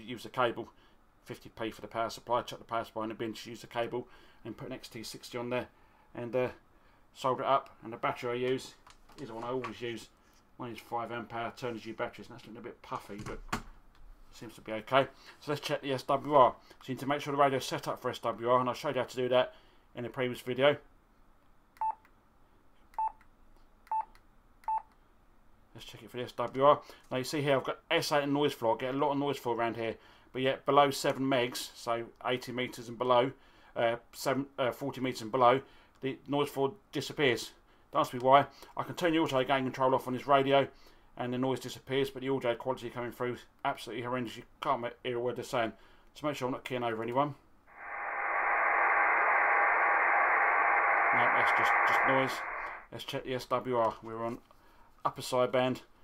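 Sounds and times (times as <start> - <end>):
radio static hiss: 47.7 - 52.9.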